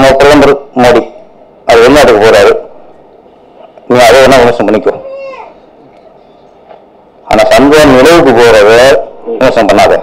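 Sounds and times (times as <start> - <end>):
man's amplified voice: 0.0 - 2.8, 3.8 - 5.4, 7.2 - 10.0
faint hall noise: 0.0 - 10.0.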